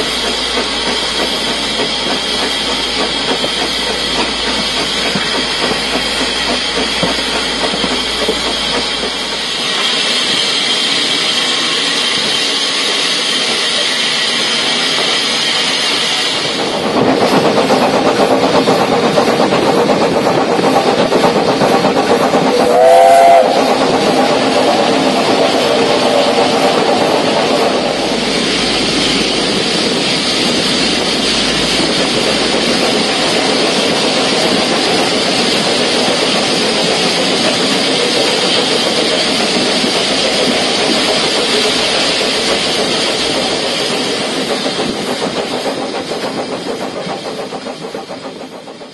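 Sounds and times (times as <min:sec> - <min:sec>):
steam locomotive running: 0:00.0 - 0:48.9
steam whistle blast: 0:22.5 - 0:24.8.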